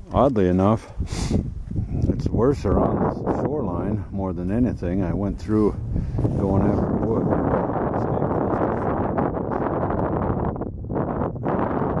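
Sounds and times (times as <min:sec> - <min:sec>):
wind blowing across microphone: 0:00.0 - 0:12.0.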